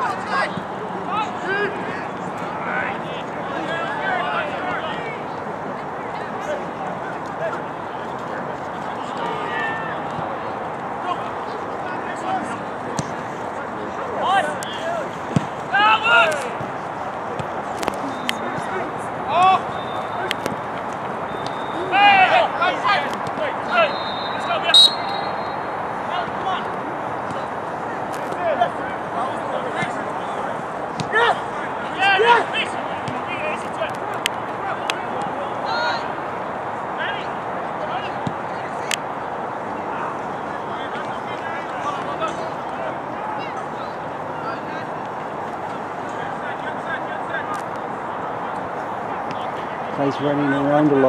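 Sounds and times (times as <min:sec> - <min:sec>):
players shouting: 0:00.0 - 0:51.0.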